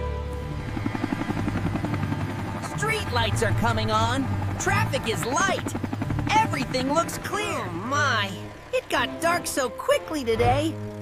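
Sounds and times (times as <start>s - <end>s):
background music: 0.0s - 11.0s
helicopter rotor chopping: 0.3s - 11.0s.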